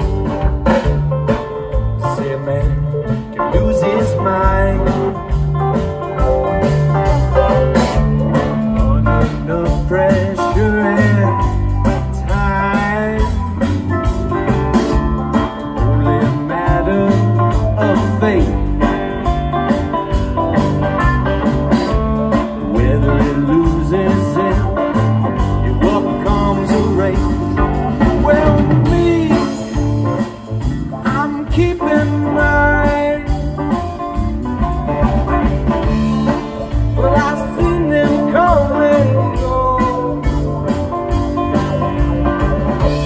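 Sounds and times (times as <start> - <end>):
bass guitar: 0.0 - 43.0
drum kit: 0.0 - 43.0
electric guitar: 0.0 - 43.0
keyboard: 0.0 - 43.0.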